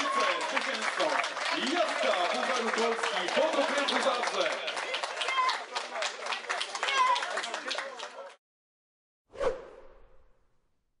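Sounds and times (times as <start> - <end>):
whoosh sound effect: 9.3 - 10.4.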